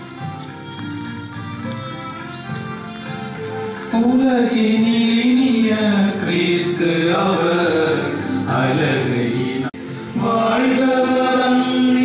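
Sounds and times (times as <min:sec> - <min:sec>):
group singing a slow hymn: 0:06.2 - 0:12.0.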